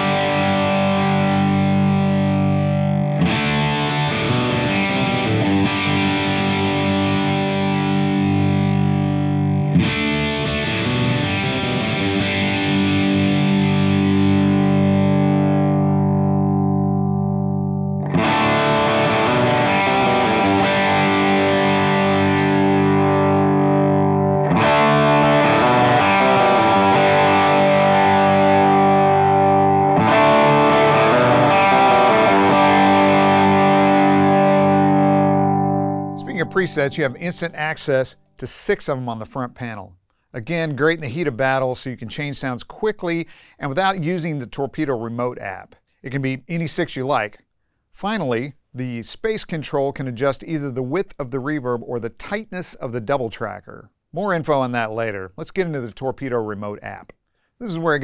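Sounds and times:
electric guitar chords ringing: 0:00.0 - 0:38.2.

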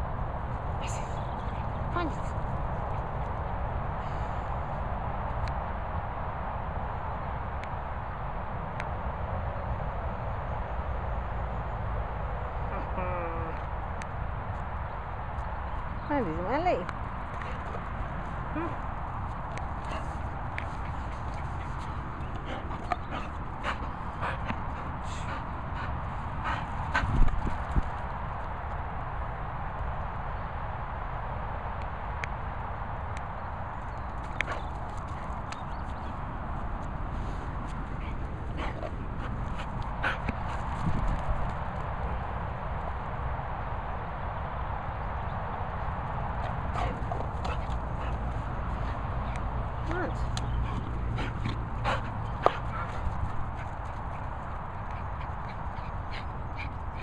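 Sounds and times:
steady low rush: 0:00.0 - 0:57.0.

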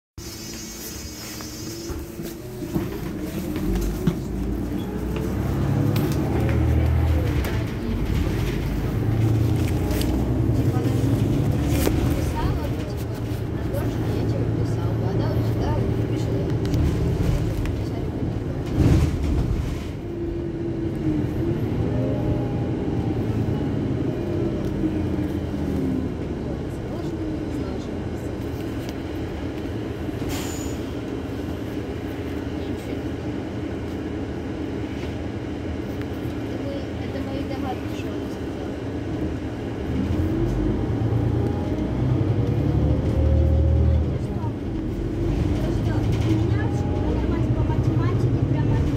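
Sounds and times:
bus diesel engine idling: 0:00.2 - 0:48.9.

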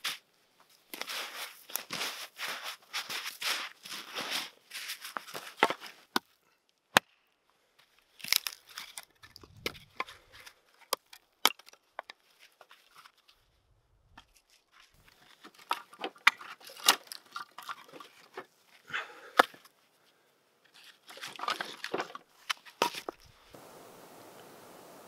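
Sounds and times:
crunching scrapes on snow: 0:00.9 - 0:06.1
wood cracking: 0:08.1 - 0:13.2, 0:14.1 - 0:18.5, 0:20.7 - 0:23.4.

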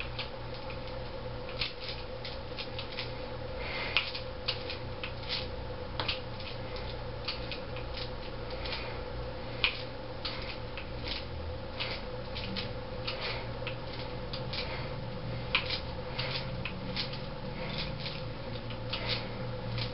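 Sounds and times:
steady hum: 0:00.0 - 0:19.9.

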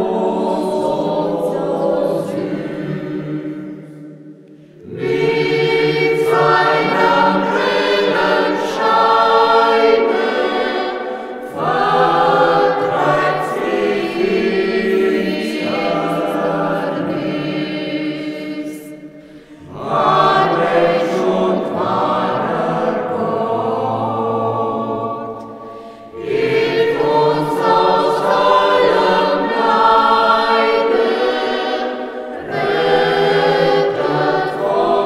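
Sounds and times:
church choir singing: 0:00.0 - 0:35.0.

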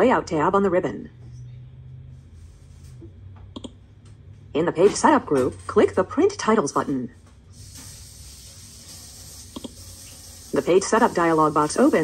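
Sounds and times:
faint low hum: 0:00.0 - 0:07.4.

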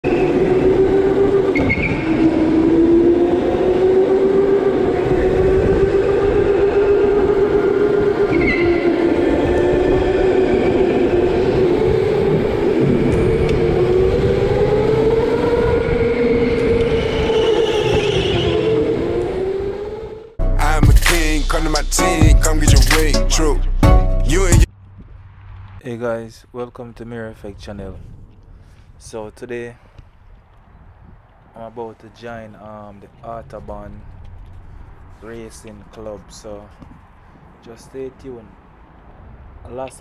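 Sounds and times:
rumbling tyre and chassis noise: 0:00.0 - 0:20.4, 0:24.6 - 0:40.0.

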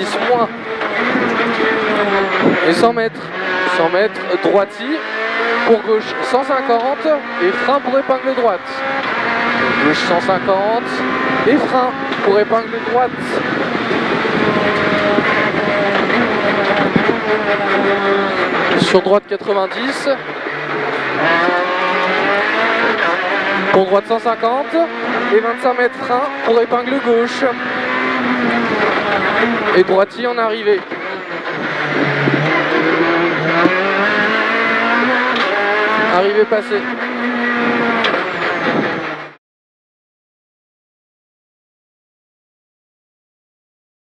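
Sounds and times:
rally car engine accelerating: 0:00.0 - 0:39.4.

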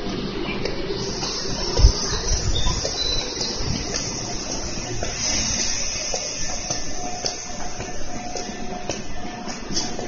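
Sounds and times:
steady high hiss: 0:00.8 - 0:10.0.

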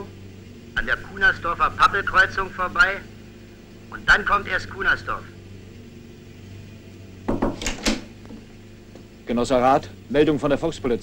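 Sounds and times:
low steady hum: 0:00.0 - 0:11.0
door handle and latch clicking: 0:07.5 - 0:08.1.

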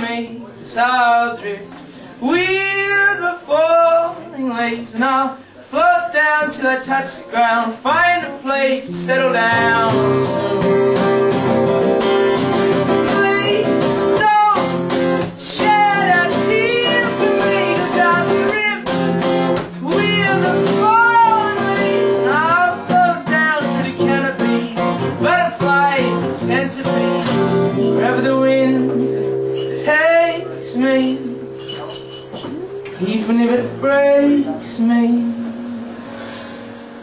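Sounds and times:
man singing: 0:00.0 - 0:11.1, 0:12.0 - 0:36.1
acoustic guitar strumming: 0:00.0 - 0:37.0.

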